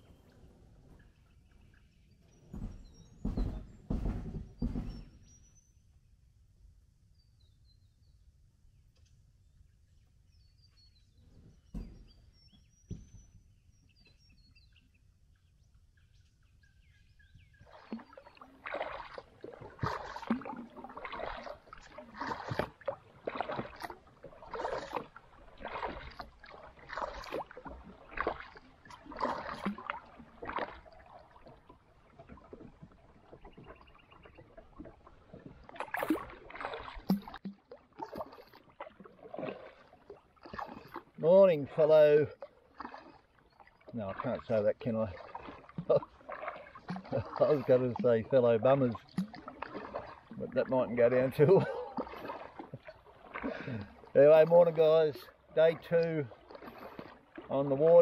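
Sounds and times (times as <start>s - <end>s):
soft knocks: 2.5s - 5.2s
kayak paddle splashing: 11.0s - 58.0s.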